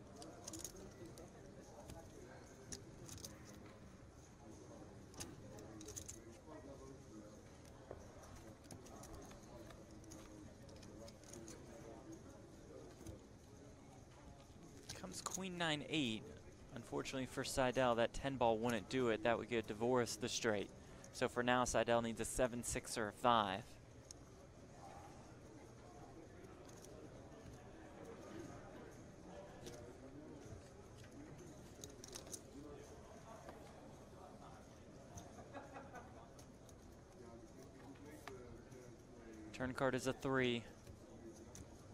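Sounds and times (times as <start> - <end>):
faint murmur of voices: 0.0 - 41.9.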